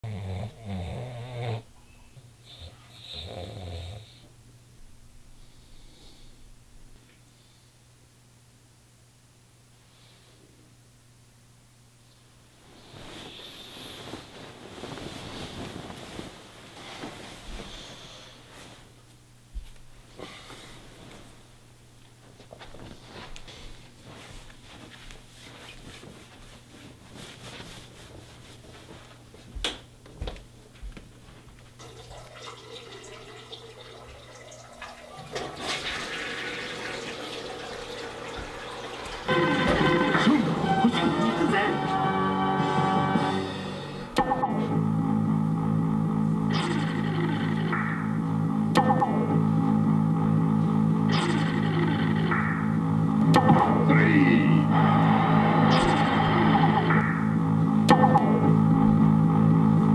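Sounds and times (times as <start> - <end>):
man snoring: 0.0 - 1.7, 2.6 - 4.2.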